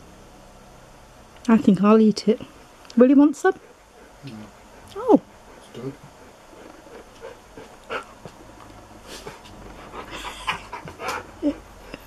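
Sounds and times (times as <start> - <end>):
dog whining: 4.0 - 8.2.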